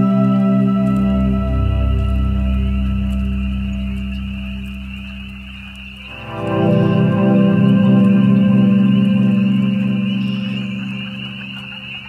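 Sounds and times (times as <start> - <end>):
ambient synthesizer chord: 0.0 - 12.0
frogs calling: 0.0 - 12.0.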